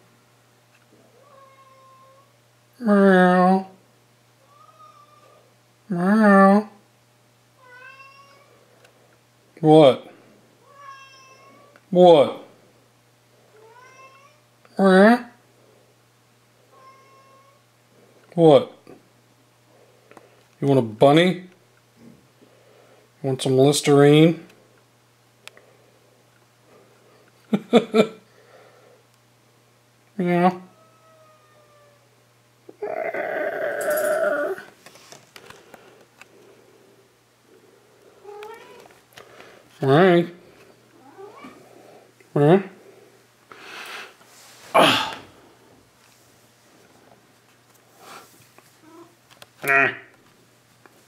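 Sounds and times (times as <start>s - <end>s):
cat meowing softly: 1.2s - 2.3s, 4.4s - 5.5s, 7.6s - 8.6s, 10.6s - 11.8s, 13.6s - 14.4s, 16.7s - 17.6s, 30.6s - 32.1s, 38.2s - 38.9s, 41.0s - 41.6s.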